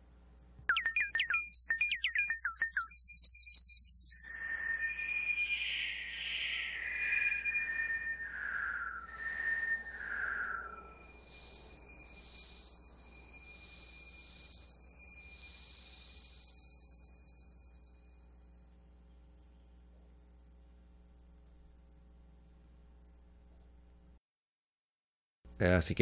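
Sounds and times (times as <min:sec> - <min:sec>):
electronic pulses: 0:00.0 - 0:16.7
high whistling electronic tones: 0:00.0 - 0:19.3.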